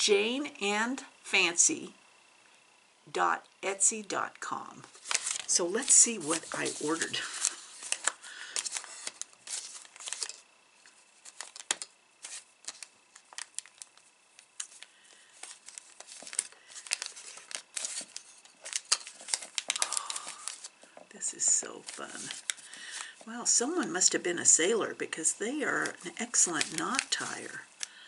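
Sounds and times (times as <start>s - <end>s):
wrapping tearing: 4.9s - 20.8s, 25.8s - 27.9s
wrapping crinkling and rustling: 4.9s - 23.6s, 25.6s - 28.0s.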